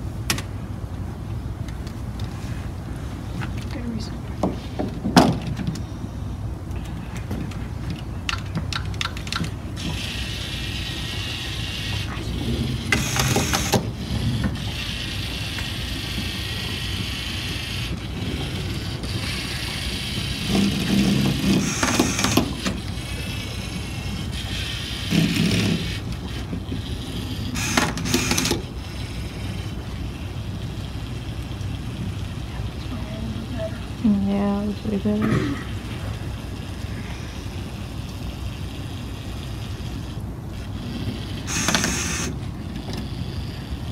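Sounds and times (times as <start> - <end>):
robot motors and gears whirring: 9.8 - 30.5, 36.6 - 43.9.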